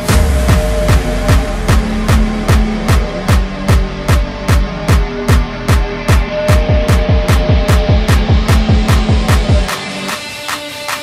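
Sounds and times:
deep kick drums: 0.0s - 9.7s
electronic music: 0.0s - 11.0s.

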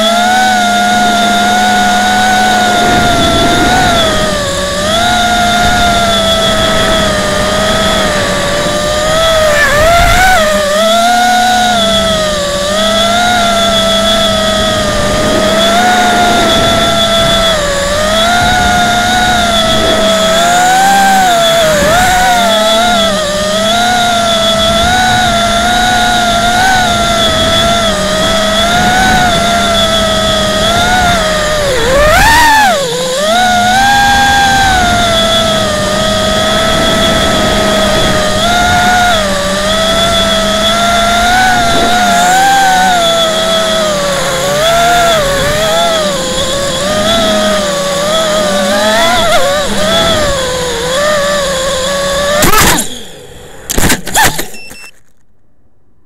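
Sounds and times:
drone motors whining: 0.0s - 55.2s.

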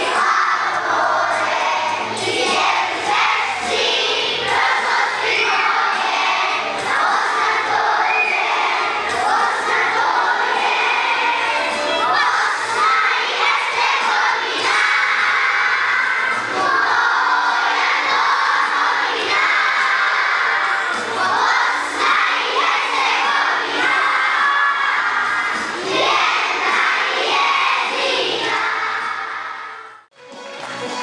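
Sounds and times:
children singing loudly: 0.0s - 30.0s.

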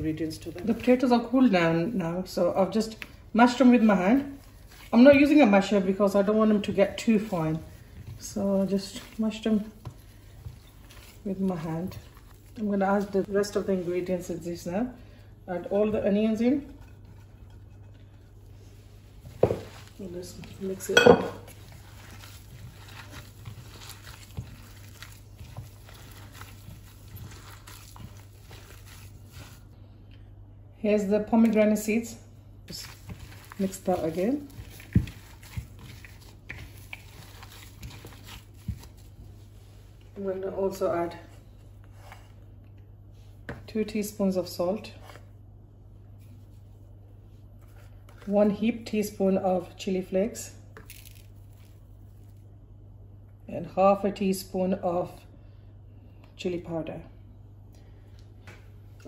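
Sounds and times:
hand mixing mashed potatoes: 0.0s - 53.4s
low steady hum: 0.0s - 59.0s.

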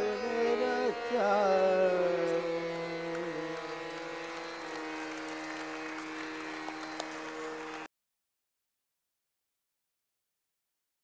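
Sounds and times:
steady drone: 0.0s - 7.9s.

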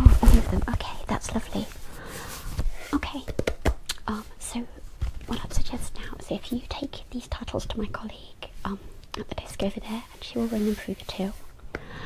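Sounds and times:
woman whispering: 2.9s - 3.3s, 4.0s - 11.4s.

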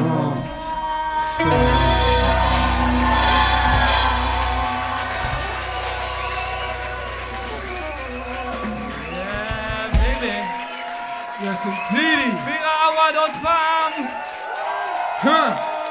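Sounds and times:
live band music with singing: 0.0s - 10.6s
heavy bass note: 0.4s - 10.0s
crowd shouting and whooping: 0.4s - 15.9s.

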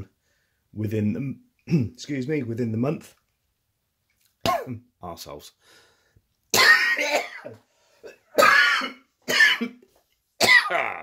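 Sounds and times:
man coughing: 4.5s - 4.8s, 6.6s - 9.8s, 10.4s - 11.0s.

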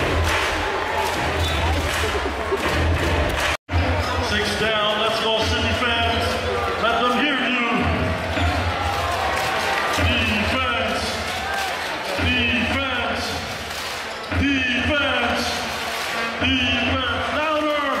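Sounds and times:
crowd voices in a hall: 0.0s - 18.0s.

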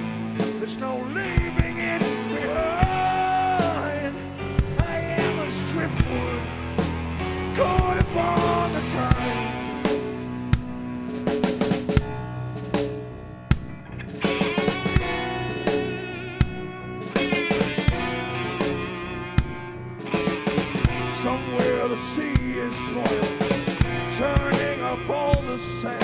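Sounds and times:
drum kit: 0.0s - 26.0s
electric guitar: 0.0s - 26.0s
keyboard: 0.0s - 26.0s.

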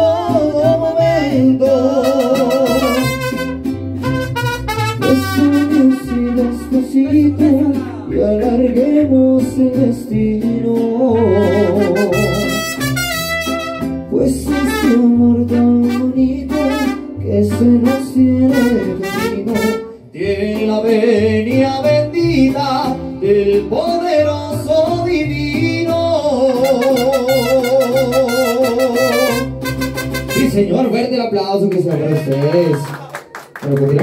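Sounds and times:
pulsing bass guitar: 0.0s - 31.2s
mariachi band playing live: 0.0s - 34.0s
trumpet and violin melody: 1.9s - 7.0s, 11.1s - 20.0s, 26.5s - 30.7s.

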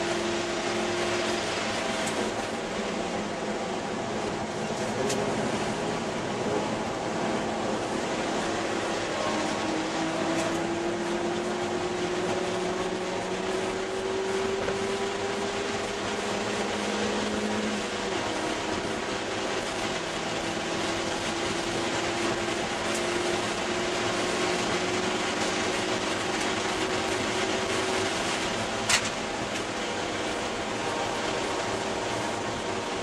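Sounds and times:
car engine running hard: 0.0s - 33.0s
wind and road noise: 0.0s - 33.0s.

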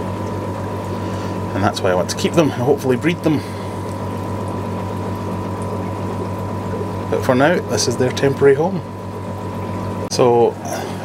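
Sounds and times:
aquarium pump humming: 0.0s - 11.0s
moving water: 0.0s - 11.0s.

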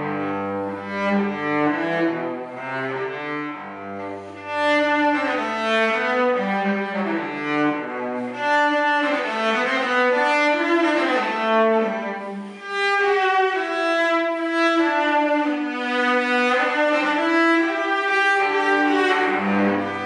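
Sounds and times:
cello slow bowed melody: 0.0s - 20.0s.

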